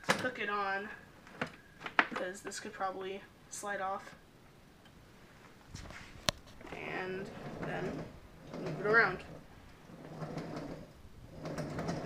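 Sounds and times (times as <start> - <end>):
cart wheels rolling on concrete: 5.8 - 12.0.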